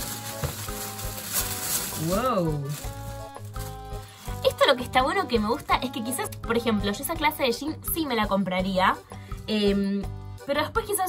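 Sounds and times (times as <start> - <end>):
plastic wrapping rustling: 0.0 - 5.7
soft background music: 0.0 - 11.0.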